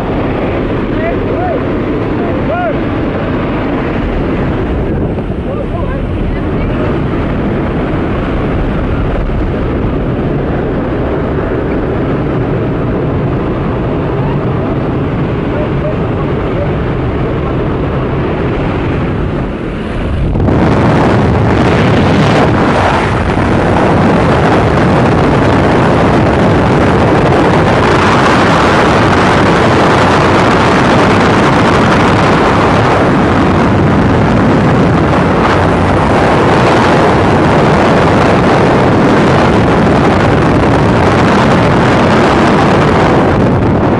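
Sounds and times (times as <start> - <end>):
propeller plane engine droning: 0.0 - 43.9
rush of wind in slipstream: 0.0 - 43.9.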